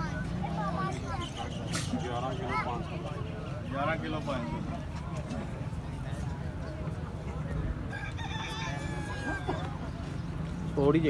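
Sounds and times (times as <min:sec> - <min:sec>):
crowd hum: 0:00.0 - 0:11.0.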